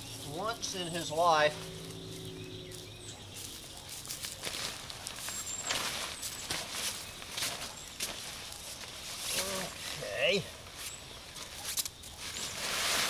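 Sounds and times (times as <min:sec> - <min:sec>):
high bird chirps: 0:00.0 - 0:03.8
footsteps on wood-chip mulch: 0:00.0 - 0:13.0
nylon tent fabric rustling: 0:02.7 - 0:13.0.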